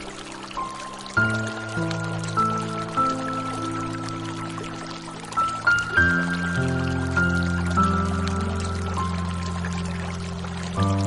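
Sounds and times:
flowing water: 0.0 - 11.0
slow soft piano music: 0.0 - 11.0.

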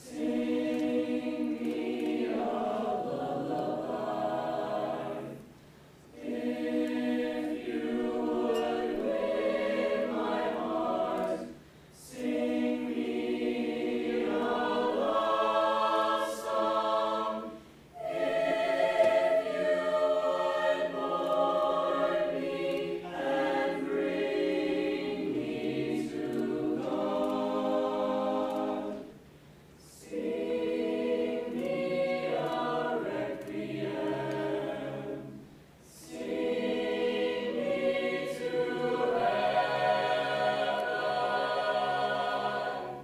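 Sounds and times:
mixed choir singing a cappella: 0.0 - 5.5, 6.1 - 29.2, 29.8 - 43.0.

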